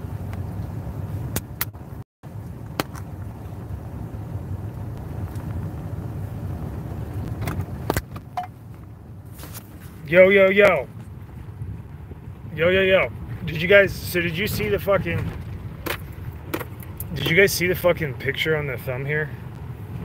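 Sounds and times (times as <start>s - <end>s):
low rumble inside car: 0.0s - 20.0s.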